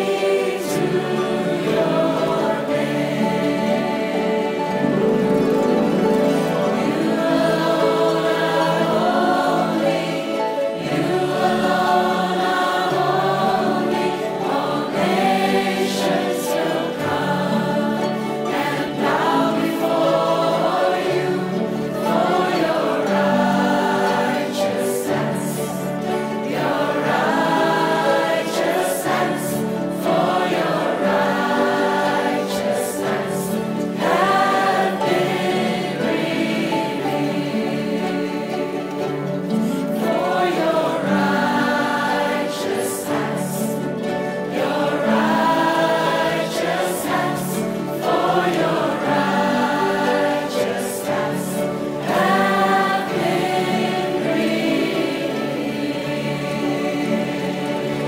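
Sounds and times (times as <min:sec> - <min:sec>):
choir singing a worship song: 0:00.0 - 0:58.0
harps playing: 0:00.0 - 0:58.0.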